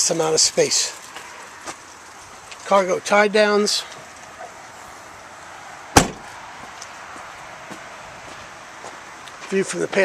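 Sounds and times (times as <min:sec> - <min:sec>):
car liftgate slamming shut: 0:05.9 - 0:06.3.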